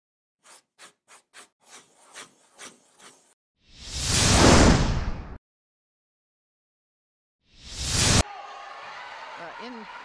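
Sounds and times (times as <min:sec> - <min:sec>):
whoosh: 0:03.7 - 0:05.4.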